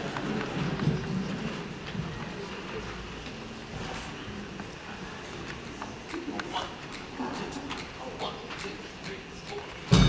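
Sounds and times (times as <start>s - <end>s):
low voices talking quietly: 0.0s - 9.9s.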